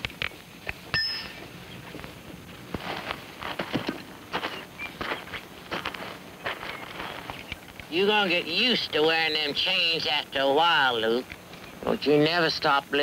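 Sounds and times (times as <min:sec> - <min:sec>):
shuffling footsteps: 0:00.0 - 0:08.0.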